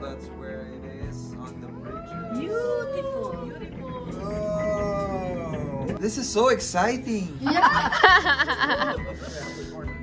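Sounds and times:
music playing: 0:00.0 - 0:10.0
voices calling ooh cheers: 0:01.8 - 0:06.0.

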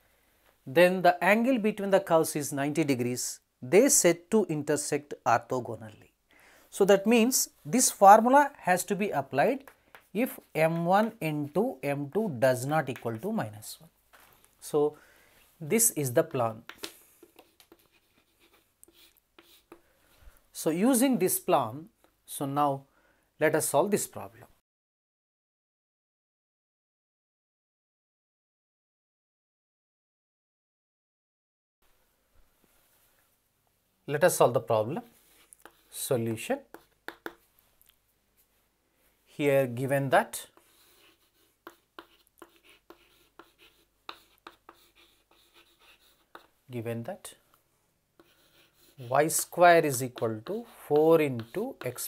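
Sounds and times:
chalk tapping and scratching: 0:09.6 - 0:13.4, 0:15.8 - 0:19.9, 0:35.1 - 0:37.6, 0:40.3 - 0:46.6, 0:48.2 - 0:52.0.

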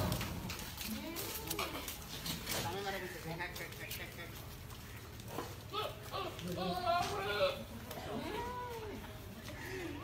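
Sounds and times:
goats bleating: 0:05.7 - 0:08.5.

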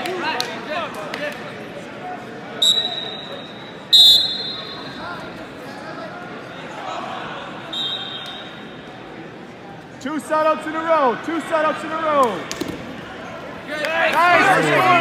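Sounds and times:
gym chatter: 0:00.0 - 0:15.0
referee's whistle blasts: 0:02.6 - 0:05.0, 0:07.7 - 0:08.6.

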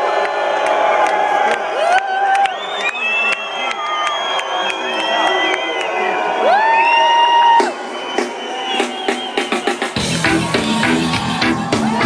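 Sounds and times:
crowd whistling and cheering: 0:00.0 - 0:12.0.

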